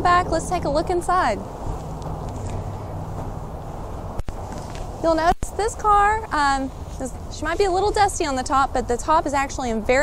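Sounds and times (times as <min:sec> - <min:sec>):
rushing background noise: 0:00.0 - 0:10.0.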